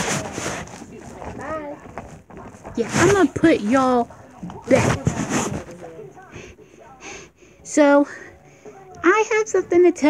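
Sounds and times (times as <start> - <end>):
plastic toy figures rustling: 0.0 - 6.0
person speaking: 0.0 - 7.3.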